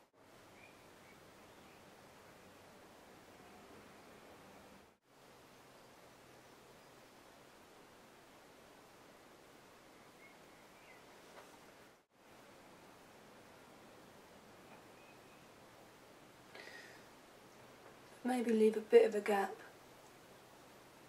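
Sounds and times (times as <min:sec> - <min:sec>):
faint room hiss: 0:00.0 - 0:21.0.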